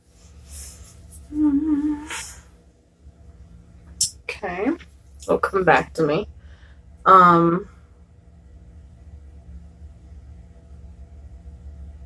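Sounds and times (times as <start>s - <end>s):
woman humming closed-mouth: 1.1s - 2.5s.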